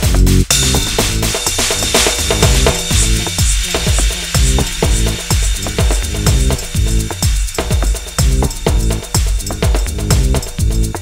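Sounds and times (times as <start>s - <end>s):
deep bass synth notes: 0.0s - 3.4s, 4.4s - 7.3s, 8.2s - 11.0s
kick drums: 0.0s - 11.0s
ratchet-like clicking percussion: 0.0s - 11.0s
steady high hiss: 0.2s - 11.0s.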